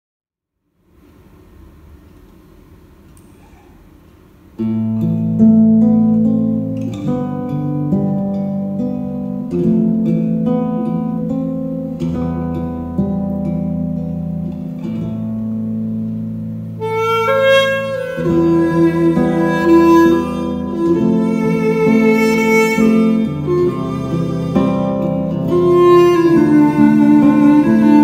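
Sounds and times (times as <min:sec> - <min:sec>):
fingerpicked acoustic guitar: 0:04.6 - 0:28.0
reedy saxophone melody: 0:16.8 - 0:28.0.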